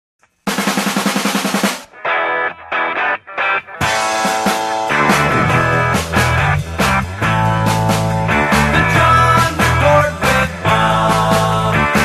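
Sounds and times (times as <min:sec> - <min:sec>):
fast snare drum roll: 0:00.5 - 0:01.9, 0:04.0 - 0:09.8
rock guitar: 0:01.4 - 0:12.0.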